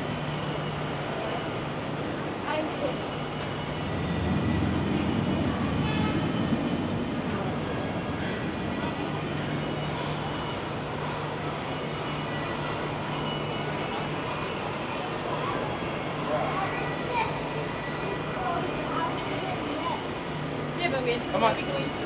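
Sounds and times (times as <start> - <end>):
traffic noise: 0.0 - 22.0
passers-by talking faintly: 0.6 - 22.0.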